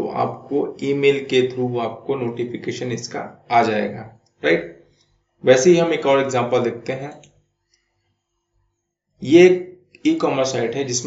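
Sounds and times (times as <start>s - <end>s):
man speaking: 0.0s - 4.6s, 5.4s - 7.2s, 9.2s - 11.0s.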